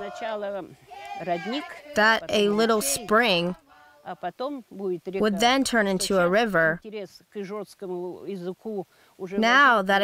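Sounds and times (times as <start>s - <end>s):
group of voices singing folk song: 0.0s - 4.2s.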